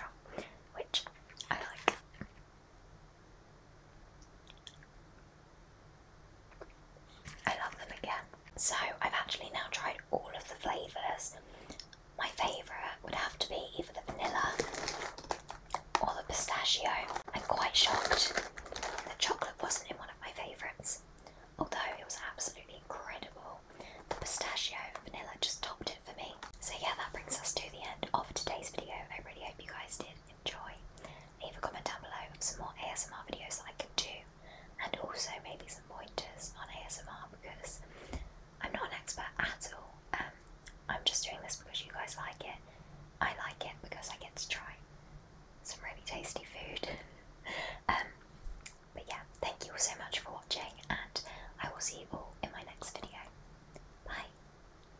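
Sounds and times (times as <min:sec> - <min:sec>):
woman whispering: 0:00.0 - 0:02.0, 0:07.4 - 0:11.4, 0:12.2 - 0:21.0, 0:21.6 - 0:30.8, 0:31.4 - 0:37.8, 0:38.6 - 0:42.6, 0:43.2 - 0:44.8, 0:45.6 - 0:47.1, 0:47.8 - 0:48.2, 0:49.0 - 0:53.3, 0:54.0 - 0:54.4.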